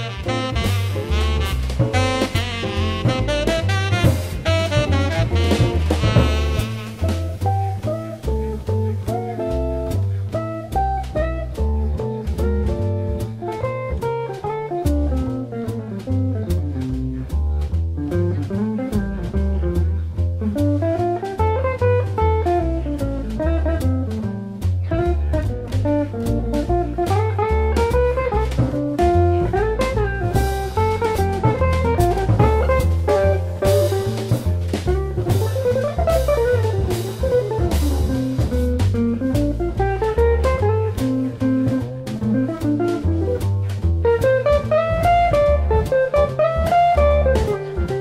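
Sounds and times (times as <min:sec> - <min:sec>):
drum kit cymbals: 0:00.0 - 0:48.0
jazz guitar solo: 0:00.0 - 0:48.0
walking double bass: 0:00.0 - 0:48.0.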